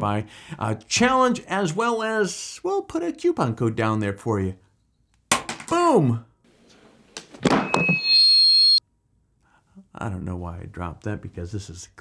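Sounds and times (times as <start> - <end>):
microphone feedback squeal: 7.4 - 8.8.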